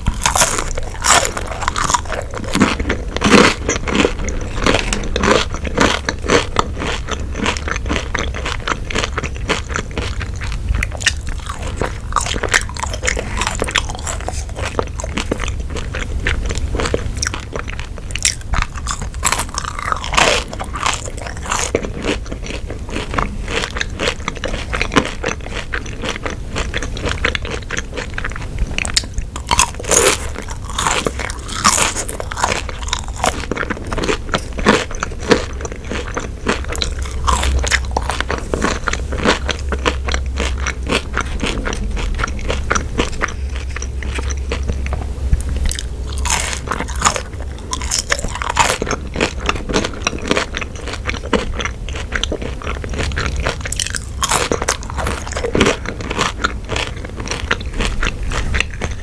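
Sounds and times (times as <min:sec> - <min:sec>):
chewing crunchy fries: 0:00.0 - 0:59.0.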